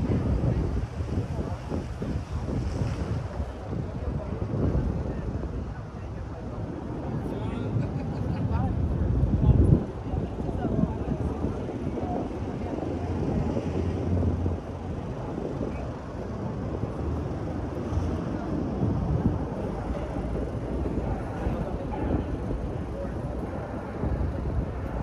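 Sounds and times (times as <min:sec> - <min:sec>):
people talking: 0:00.0 - 0:25.0
traffic noise: 0:00.0 - 0:25.0.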